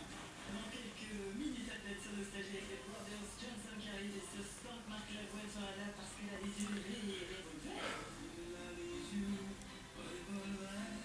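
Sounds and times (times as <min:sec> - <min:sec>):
background music: 0:00.0 - 0:11.0
speech: 0:00.4 - 0:08.1.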